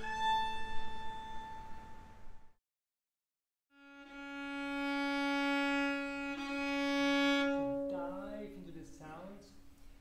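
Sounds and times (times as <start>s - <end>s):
viola long bowed note: 0.0s - 2.2s, 3.7s - 8.7s.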